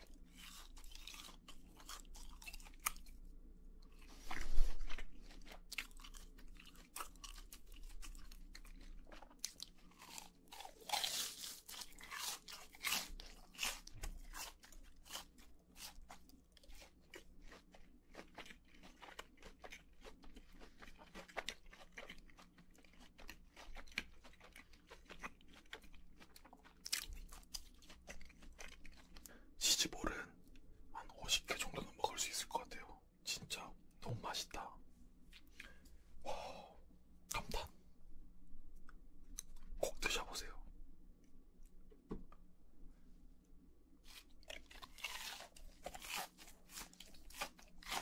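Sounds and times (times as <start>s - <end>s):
chewing crisp fried food: 0.0s - 36.7s, 44.0s - 48.0s.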